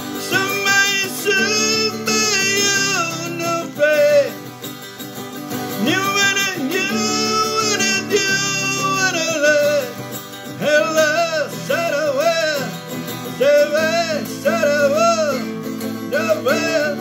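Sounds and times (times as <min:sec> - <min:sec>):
man singing: 0:00.0 - 0:04.6, 0:05.6 - 0:17.0
strummed guitar: 0:00.0 - 0:17.0.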